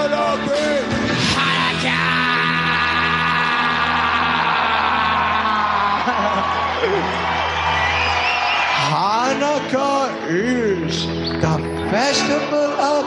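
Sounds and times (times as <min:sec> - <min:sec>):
comic pop song: 0:00.0 - 0:07.6, 0:08.8 - 0:13.0
man singing a long note: 0:01.3 - 0:06.1.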